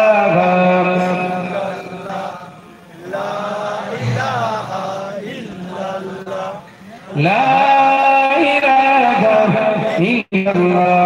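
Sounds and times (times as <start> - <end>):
man chanting into a microphone: 0.0 - 2.6, 3.6 - 11.0.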